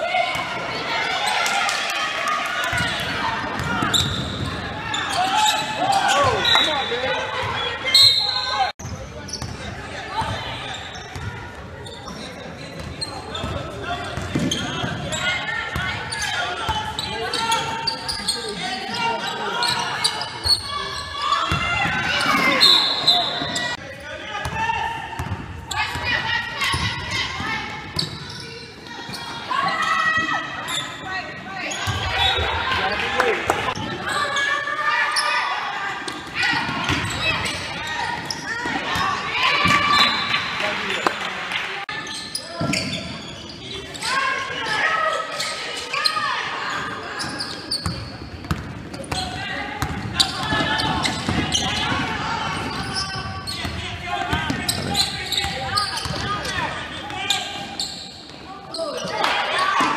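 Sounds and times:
voices calling out: 49.0 - 59.9.

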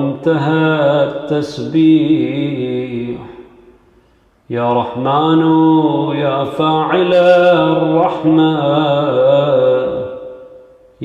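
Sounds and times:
man chanting: 0.0 - 3.6, 4.5 - 10.8.

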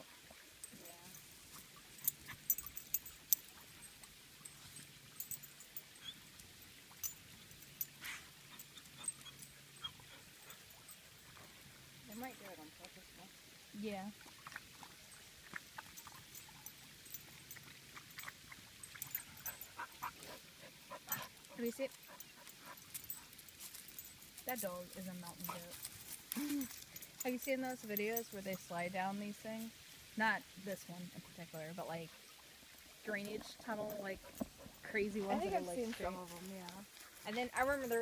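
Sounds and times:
faint clicks and rustles: 14.2 - 28.7.

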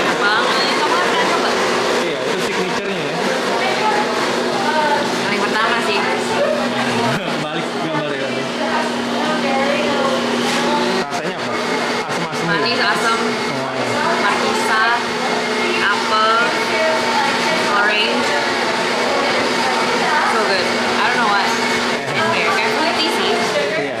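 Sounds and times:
voices talking: 0.0 - 24.0.

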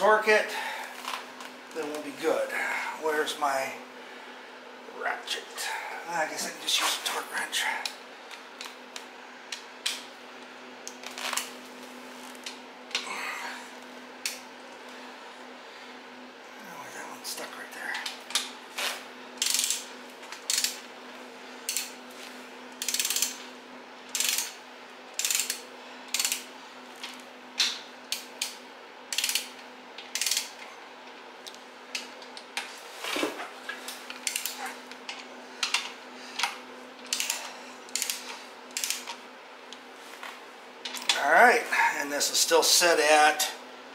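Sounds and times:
steady low hum: 0.0 - 43.9
ratchet wrench clicking: 19.4 - 20.8, 21.7 - 22.0, 22.8 - 23.4, 24.1 - 24.6, 25.2 - 26.5, 28.1 - 30.5, 34.2 - 34.6, 37.0 - 39.2.

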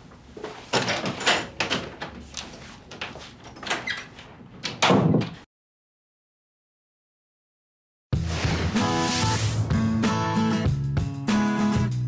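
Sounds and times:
door banging shut: 4.7 - 5.4.

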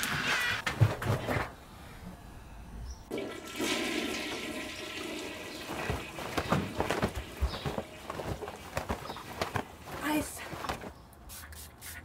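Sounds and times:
toilet flushing: 3.1 - 6.3.

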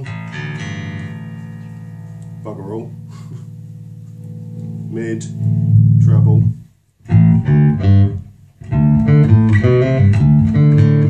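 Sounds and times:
plucked bass guitar note: 0.0 - 11.0.

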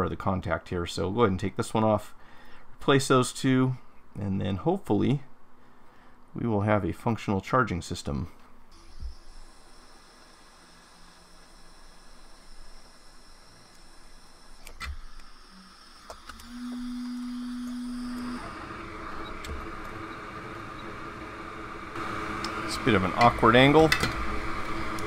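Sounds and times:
steady low hum: 0.9 - 25.0.

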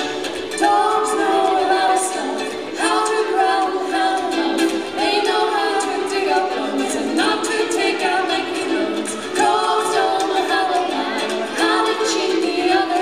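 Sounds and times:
strummed ukulele: 0.0 - 13.0
voices singing folk song: 0.0 - 13.0.

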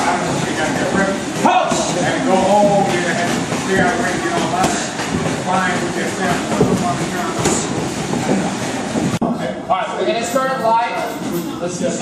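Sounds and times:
room noise: 0.0 - 12.0
boxing gloves hitting focus mitts: 0.5 - 8.5.

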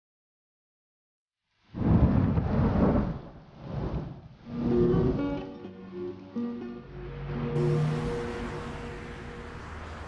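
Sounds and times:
plucked guitar music: 4.5 - 9.8.

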